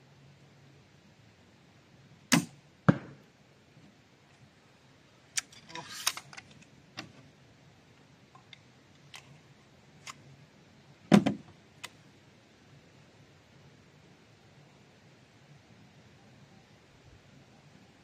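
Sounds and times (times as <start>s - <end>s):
crossbow shot cracks: 2.3s - 3.2s.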